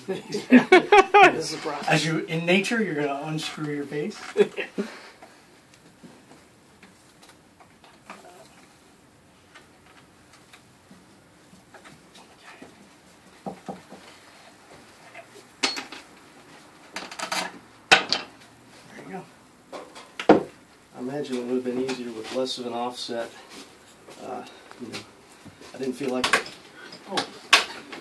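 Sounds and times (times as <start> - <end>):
wooden knocks and clatter: 13.4 - 14.0.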